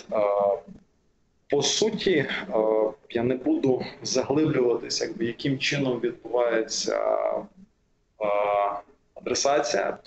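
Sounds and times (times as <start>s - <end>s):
man speaking: 0.0s - 0.7s, 1.5s - 7.5s, 8.2s - 10.0s
man's hesitation sound: 0.0s - 0.8s, 1.5s - 7.6s, 8.2s - 10.0s.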